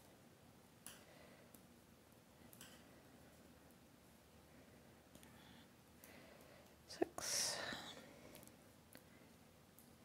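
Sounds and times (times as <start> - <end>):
woman whispering: 6.9 - 8.0.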